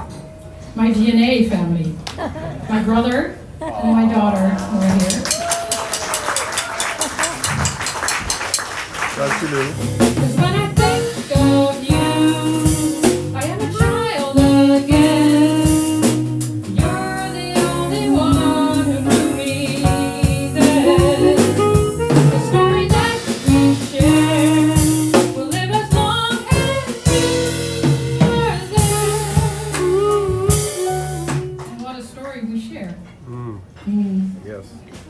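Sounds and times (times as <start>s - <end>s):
drums and percussion: 5.0s - 31.8s
piano: 5.3s - 31.9s
bass: 9.0s - 31.9s
harmonica melody: 14.5s - 25.2s.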